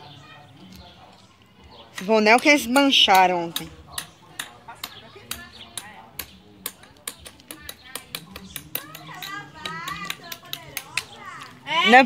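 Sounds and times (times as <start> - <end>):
distant voices talking: 0.0 - 12.0.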